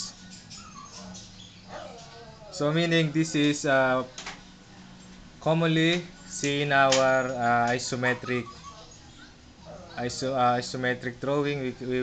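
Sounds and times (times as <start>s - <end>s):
marker squeaking on whiteboard: 0.0s - 2.1s, 8.1s - 9.4s
low steady hum: 0.0s - 12.0s.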